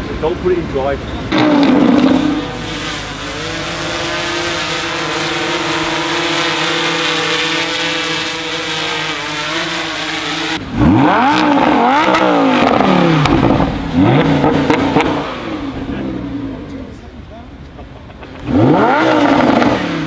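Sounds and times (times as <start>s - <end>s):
sports car engine revving: 0.0s - 20.0s
drone rotors whining: 1.0s - 16.8s.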